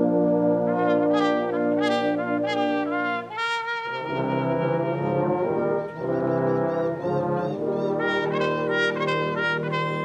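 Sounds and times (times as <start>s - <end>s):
brass choir playing sustained chords: 0.0s - 10.0s.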